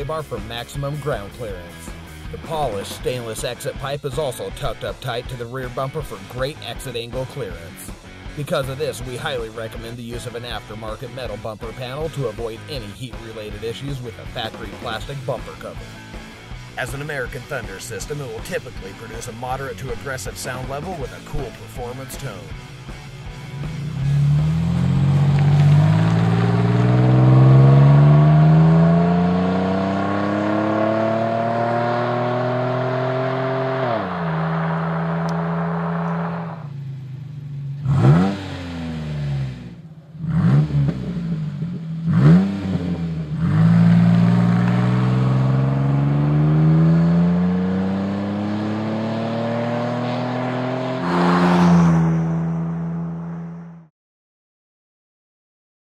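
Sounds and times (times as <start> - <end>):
car engine accelerating: 0.0 - 53.9
engine revving: 0.0 - 53.9.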